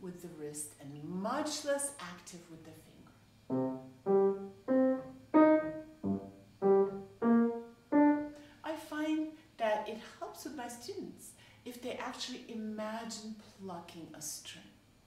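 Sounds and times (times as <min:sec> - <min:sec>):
piano staccato notes: 0:03.5 - 0:08.3.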